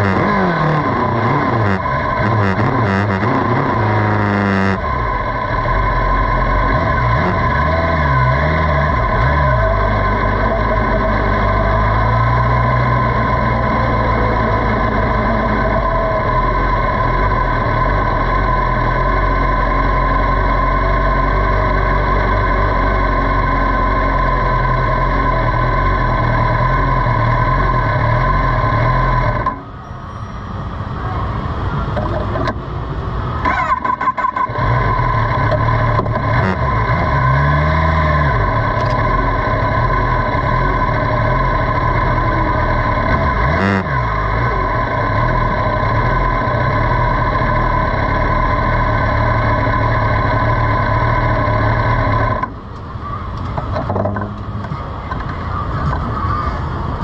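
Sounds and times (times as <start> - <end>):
motorcycle engine running: 0.0 - 30.0, 30.6 - 57.0.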